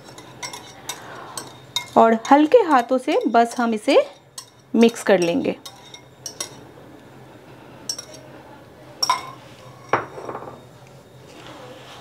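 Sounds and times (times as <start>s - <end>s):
kitchenware clinking: 0.0s - 6.7s, 7.9s - 8.3s, 9.0s - 10.8s.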